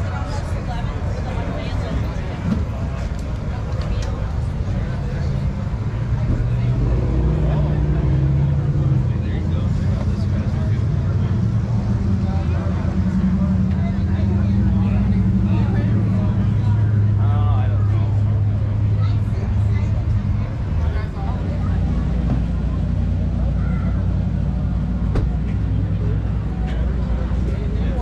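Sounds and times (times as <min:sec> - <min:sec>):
car engine idling: 0:00.0 - 0:28.0
crowd chatter: 0:00.0 - 0:28.0.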